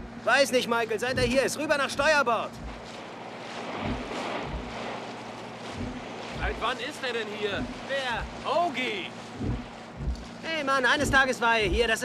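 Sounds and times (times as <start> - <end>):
water rushing along hull: 0.0 - 12.0
wind: 0.0 - 12.0
bow thudding into waves: 1.1 - 12.0.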